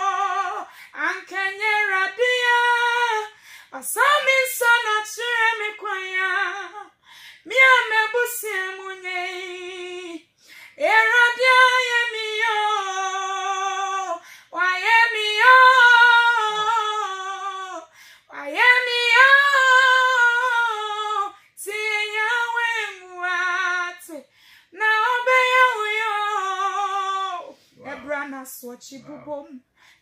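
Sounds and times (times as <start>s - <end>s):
woman singing unaccompanied: 0.0s - 10.2s, 10.8s - 29.6s.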